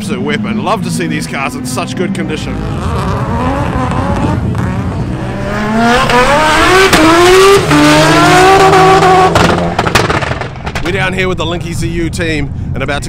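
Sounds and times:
car engine accelerating hard: 0.0s - 10.5s.

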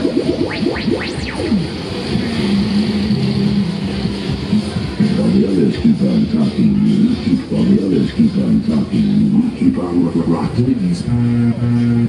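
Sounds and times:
loud music over sound system: 0.0s - 12.0s
rumble of spinning ride: 0.0s - 12.0s.

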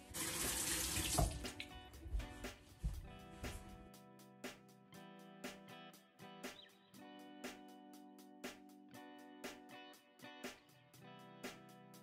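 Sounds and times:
bathroom tap running: 0.0s - 1.8s
background music: 0.0s - 12.0s.

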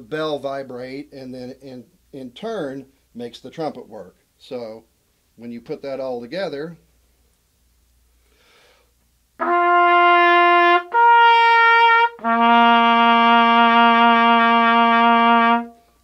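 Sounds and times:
trumpet playing long notes: 9.4s - 16.0s.

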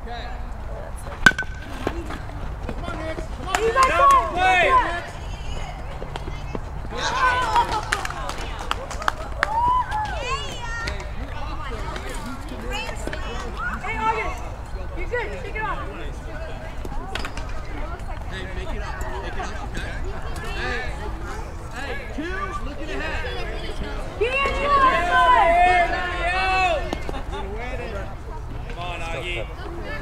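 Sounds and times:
outdoor background noise: 0.0s - 30.0s.

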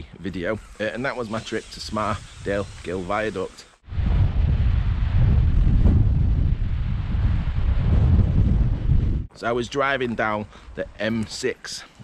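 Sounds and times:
wind buffeting microphone: 3.8s - 9.3s.

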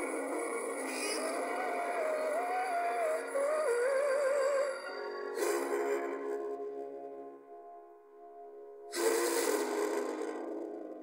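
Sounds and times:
soft sustained music: 0.0s - 11.0s.

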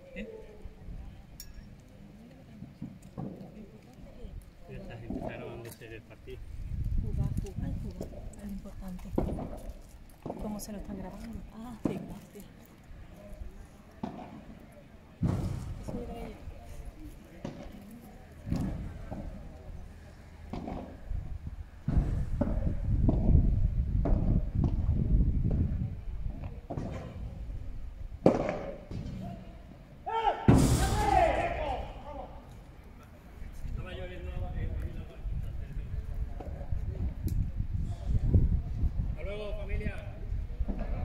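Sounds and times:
rackets hitting ball: 20.5s - 21.0s, 28.2s - 29.4s.

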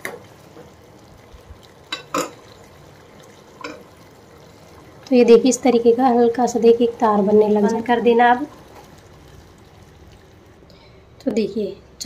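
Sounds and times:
syrup bubbling in saucepan: 0.0s - 11.4s
metal skimmer clinking on pan: 1.9s - 2.4s.

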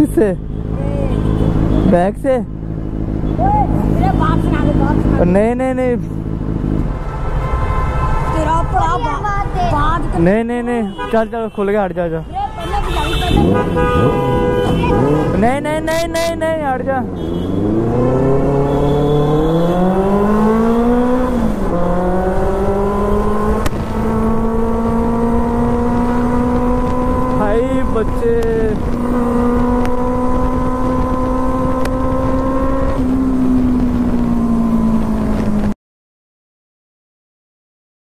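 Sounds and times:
motorcycle engine accelerating: 13.2s - 35.8s.

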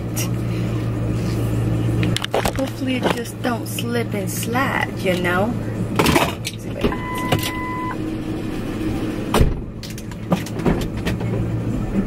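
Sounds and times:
low engine hum: 0.0s - 12.0s
dashboard warning chime beep: 6.9s - 8.0s.

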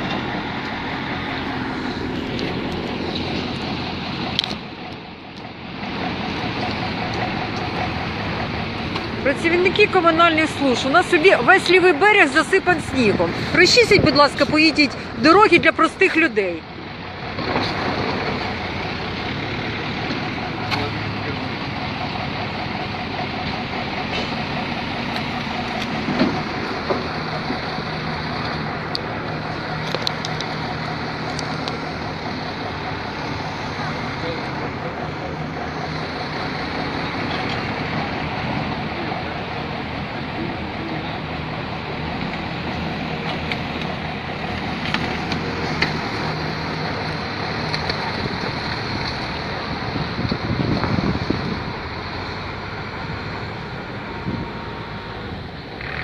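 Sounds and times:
street noise: 0.0s - 56.0s
vehicle engines running: 0.0s - 56.0s
indistinct voices: 6.1s - 51.9s.

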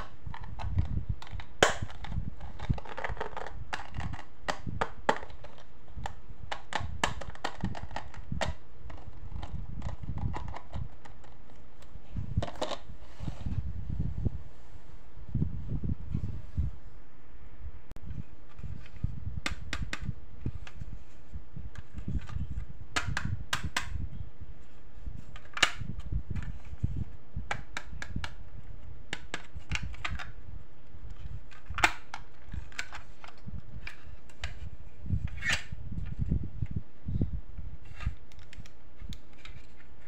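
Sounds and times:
plastic clicks of tapping nails: 0.0s - 11.6s.

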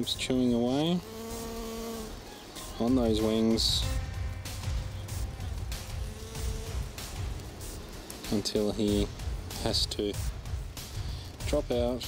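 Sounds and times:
bee wings buzzing: 0.3s - 11.5s.

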